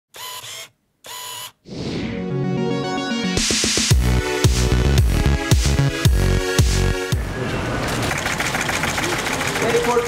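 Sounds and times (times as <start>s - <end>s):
electronic music: 1.9s - 7.3s.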